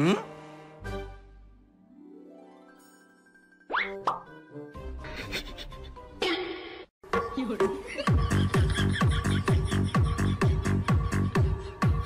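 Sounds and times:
cartoon plop effects: 3.7s - 4.3s.

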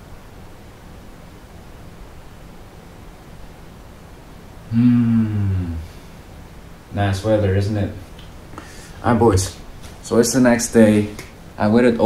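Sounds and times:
faint steady hiss: 0.0s - 12.0s
man humming low note: 4.7s - 6.1s.

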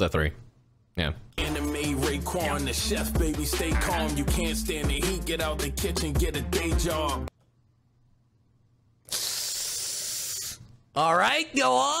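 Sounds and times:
person hissing through teeth: 9.0s - 10.7s.

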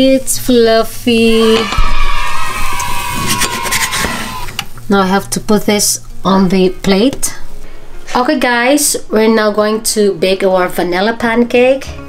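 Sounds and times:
spatula scraping frying pan: 3.1s - 4.5s.

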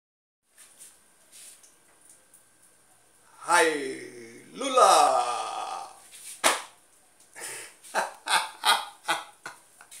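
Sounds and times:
man laughing: 7.4s - 10.0s.

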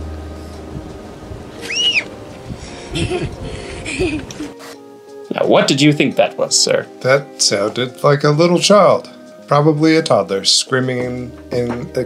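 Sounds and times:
faint music: 0.0s - 12.0s
softer lower animal calls: 1.5s - 2.1s
shrill animal squeal: 1.6s - 2.1s.

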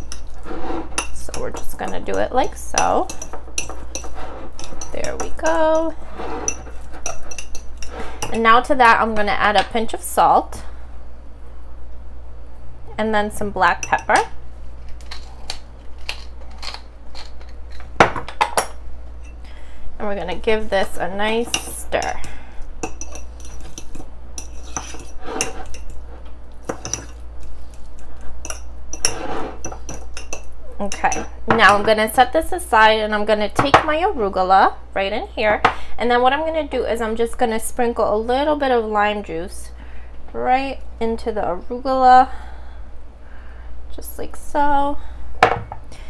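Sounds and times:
fork scraping and clinking bowl: 0.0s - 8.4s, 22.8s - 31.8s.

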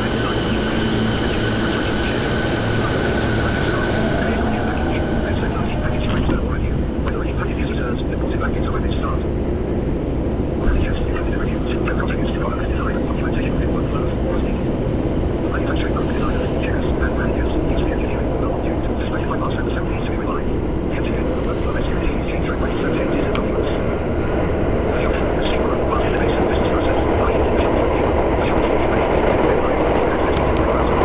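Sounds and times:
subway train rumble: 0.0s - 31.0s.

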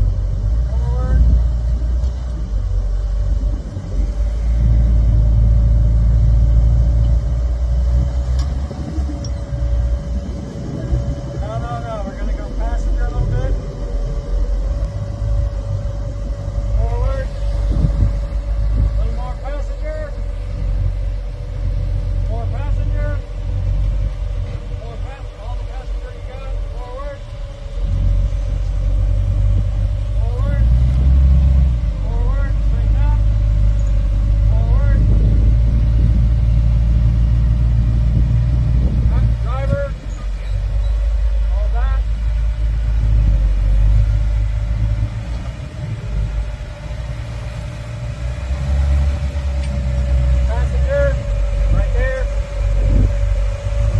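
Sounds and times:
buggy engine low rumble: 0.0s - 53.9s.

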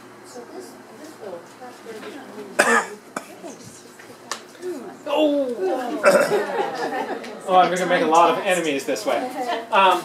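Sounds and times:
person coughing loudly: 2.6s - 3.4s, 6.0s - 6.4s.

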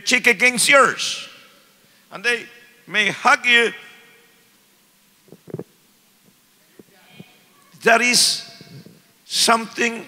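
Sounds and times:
man talking into microphone: 7.8s - 10.0s.

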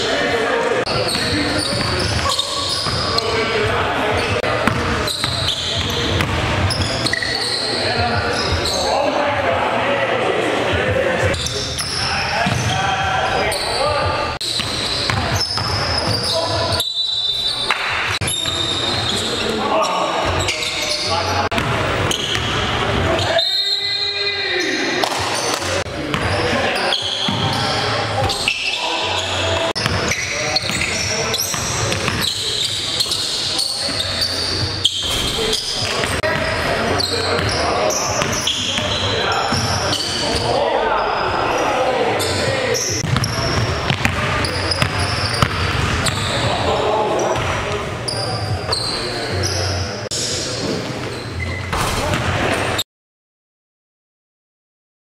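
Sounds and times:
players calling out: 0.0s - 52.8s
basketball bouncing on hardwood floor: 43.0s - 46.2s.

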